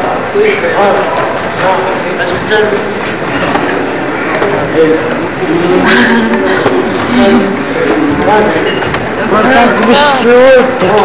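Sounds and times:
crowd chatter: 0:00.0 - 0:11.0
people speaking close by: 0:00.0 - 0:11.0.

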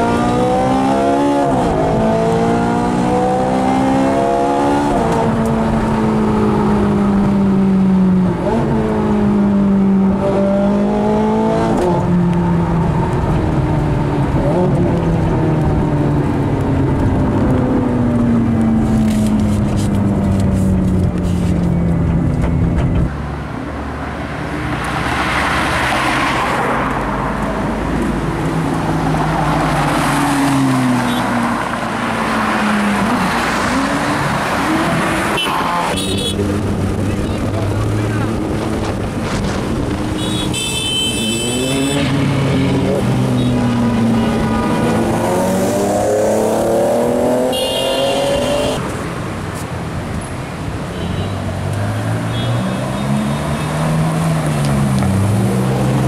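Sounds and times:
sports car engines revving: 0:00.0 - 0:50.7, 0:51.4 - 0:56.0.

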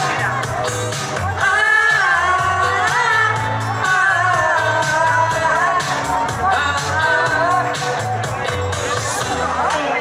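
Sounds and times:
amplified dance-band music: 0:00.0 - 0:10.0.

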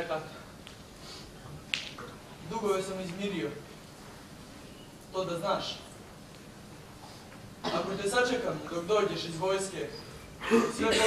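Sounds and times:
man speaking: 0:07.7 - 0:11.0.

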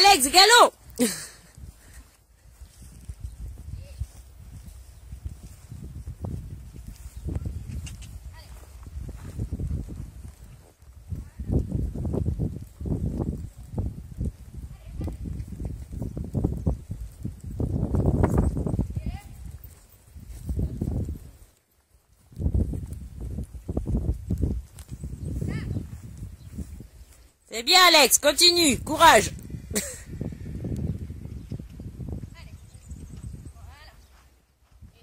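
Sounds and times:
horse hoofbeats on sand: 0:02.9 - 0:27.2.

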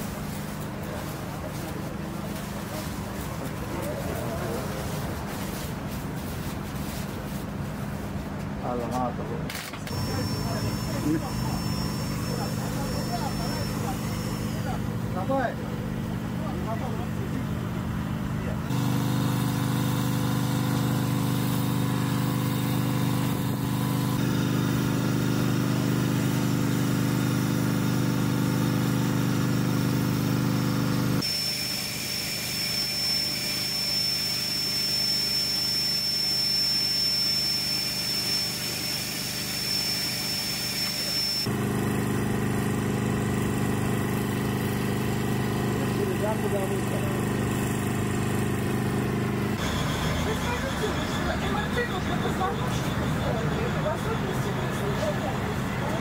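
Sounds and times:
thin high whine: 0:09.9 - 0:15.6, 0:18.7 - 0:41.5.

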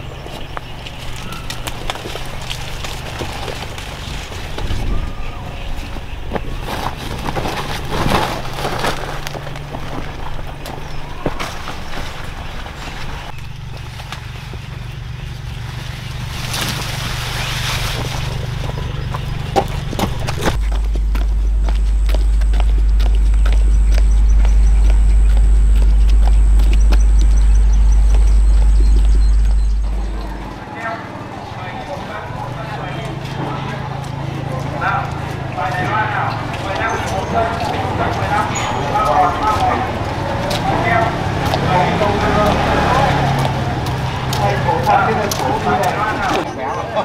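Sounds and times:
footsteps among corn plants: 0:00.0 - 0:30.5, 0:31.8 - 0:47.0
plastic sack rustling: 0:06.5 - 0:10.2
deep rumble with high whine: 0:07.0 - 0:30.6.

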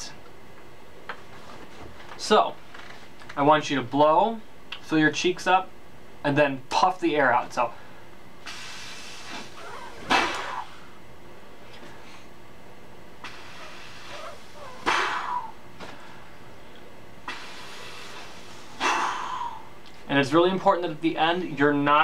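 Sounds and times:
faint steady blowing: 0:07.7 - 0:20.0
breath puffed through pursed lips: 0:08.4 - 0:10.7, 0:13.2 - 0:15.5, 0:17.3 - 0:19.6.

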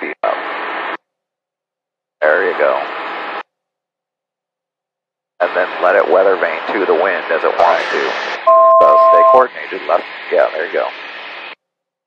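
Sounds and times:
speech through headset intercom: 0:00.0 - 0:00.5, 0:02.2 - 0:02.8, 0:05.4 - 0:11.0.

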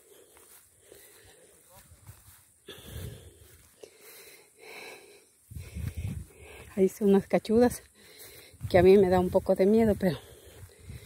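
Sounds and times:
person breathing: 0:00.0 - 0:06.8, 0:07.8 - 0:08.7, 0:10.0 - 0:11.0.

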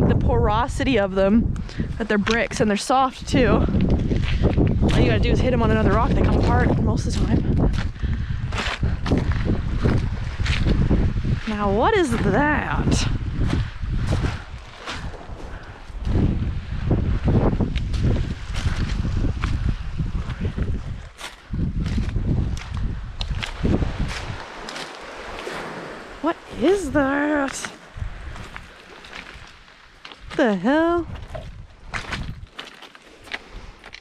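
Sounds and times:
wind buffeting the microphone: 0:00.0 - 0:34.0
footsteps on pebbles: 0:02.0 - 0:12.8, 0:13.4 - 0:16.3, 0:17.6 - 0:26.0, 0:27.1 - 0:34.0.

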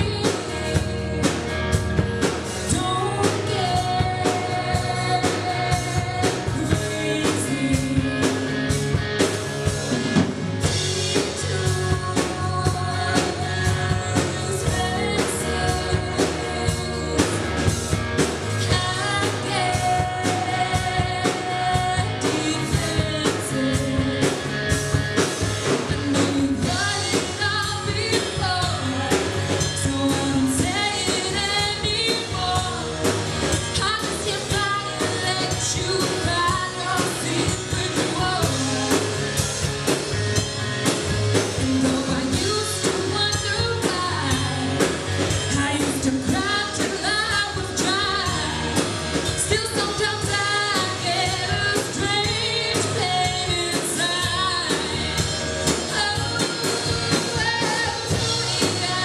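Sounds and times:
woman singing into a microphone: 0:00.0 - 0:08.8, 0:10.6 - 0:39.5, 0:41.4 - 0:59.0
drum kit: 0:00.0 - 0:59.0
guitar: 0:00.0 - 0:59.0
live rock band playing: 0:00.0 - 0:59.0.

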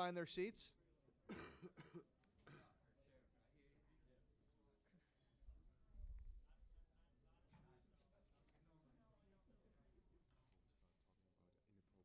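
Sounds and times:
person coughing: 0:01.3 - 0:02.8.

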